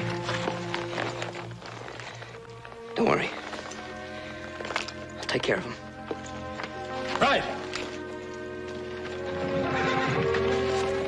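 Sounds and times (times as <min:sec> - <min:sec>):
background music: 0:00.0 - 0:11.0
hooves clopping: 0:00.0 - 0:11.0.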